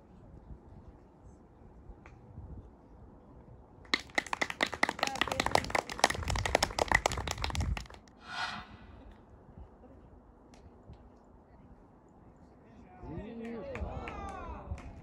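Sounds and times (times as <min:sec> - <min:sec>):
spectators clapping: 0:03.9 - 0:08.0.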